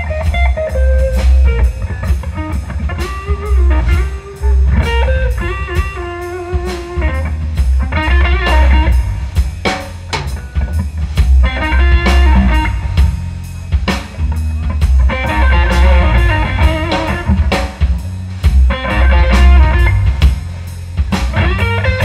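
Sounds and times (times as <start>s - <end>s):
electric lead guitar runs: 0.0s - 20.5s, 21.1s - 22.0s
drum kit steady beat: 0.0s - 22.0s
electric bass: 0.0s - 22.0s.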